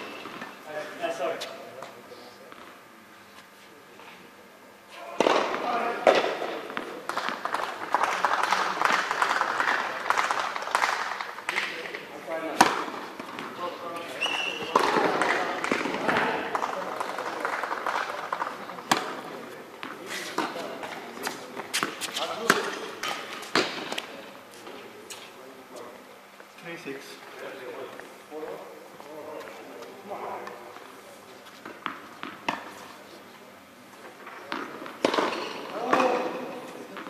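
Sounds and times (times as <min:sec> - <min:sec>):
tennis balls struck and bouncing: 0:05.2 - 0:11.8, 0:14.6 - 0:24.1, 0:31.6 - 0:32.8, 0:34.2 - 0:37.0.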